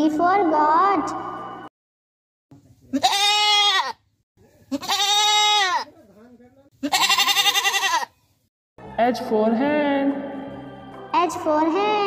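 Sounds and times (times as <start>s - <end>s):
goat bleating: 2.9s - 4.0s, 4.7s - 5.9s, 6.8s - 8.2s.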